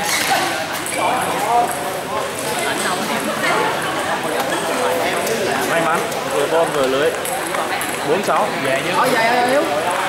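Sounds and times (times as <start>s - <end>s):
people chattering in a hall: 0.0s - 10.0s.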